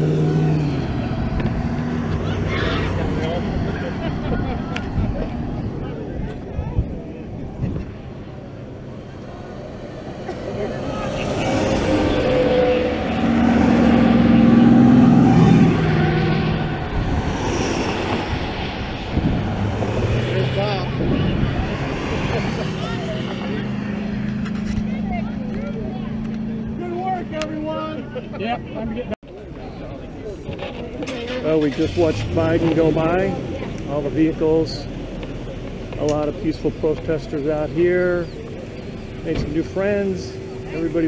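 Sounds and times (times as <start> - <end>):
crowd voices: 0.0 - 41.0
vehicles passing on highway: 0.0 - 41.0.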